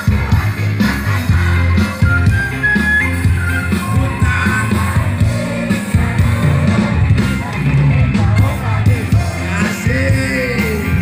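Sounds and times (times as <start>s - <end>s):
live band music over pa: 0.0s - 11.0s.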